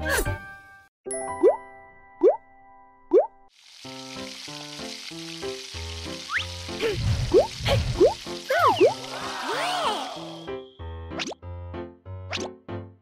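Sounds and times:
light children's music: 0.0 - 13.0
rising cartoon plop effects: 3.1 - 3.3, 11.2 - 11.4, 12.3 - 12.5
patties sizzling on grill pan: 3.6 - 9.4.

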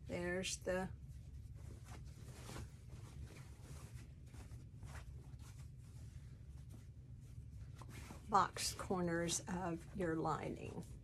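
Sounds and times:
fabric rustling: 0.0 - 11.0
steady low hum: 0.0 - 11.0.

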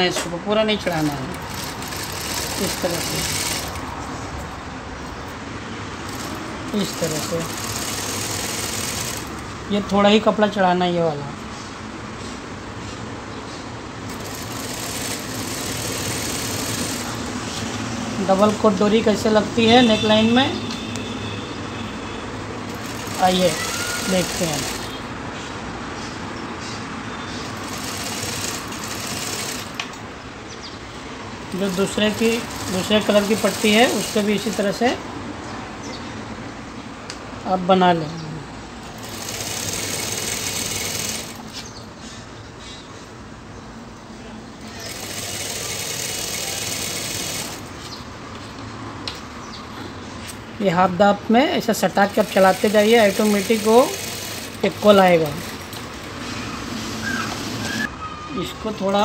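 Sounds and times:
sewing machine stitching: 0.0 - 4.0, 6.0 - 9.5, 14.1 - 17.3, 22.7 - 25.0, 27.4 - 29.8, 31.5 - 34.8, 39.0 - 41.5, 44.6 - 47.7, 51.7 - 57.9
motor humming: 22.7 - 25.0.

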